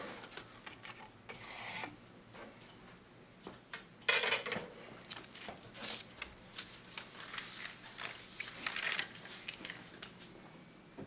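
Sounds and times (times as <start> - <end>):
paper rustling: 5.0 - 10.3.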